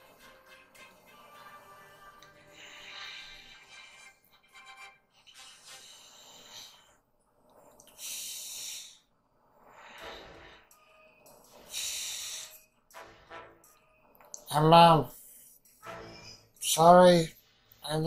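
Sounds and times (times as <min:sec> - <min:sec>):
breaths hissing through a tube: 0:02.3 - 0:04.1, 0:05.4 - 0:10.8, 0:11.4 - 0:12.8.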